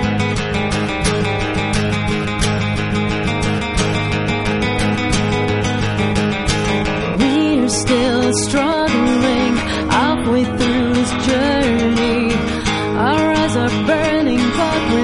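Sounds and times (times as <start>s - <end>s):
acoustic bass guitar: 0.0s - 15.0s
acoustic guitar strumming: 0.0s - 15.0s
woman singing: 7.2s - 15.0s.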